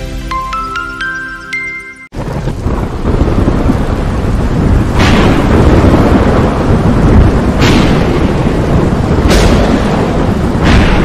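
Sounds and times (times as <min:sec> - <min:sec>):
rain: 0:00.0 - 0:11.0
low rumble of thunder: 0:02.2 - 0:11.0
sharp thunderclap: 0:02.2 - 0:11.0.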